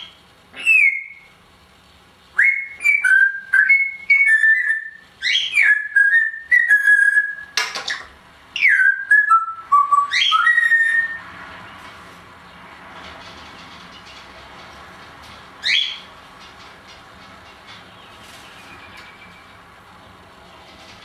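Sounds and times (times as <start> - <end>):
parrot whistling: 0.0 - 1.3, 2.4 - 7.6, 8.6 - 11.2, 15.6 - 16.1.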